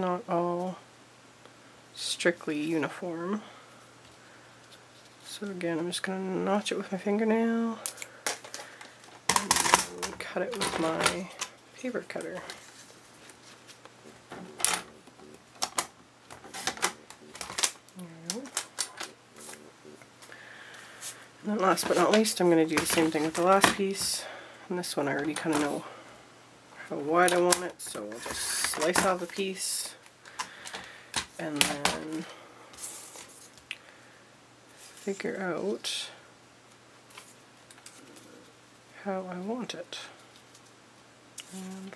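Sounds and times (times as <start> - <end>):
paper being handled: 21.0 - 24.1.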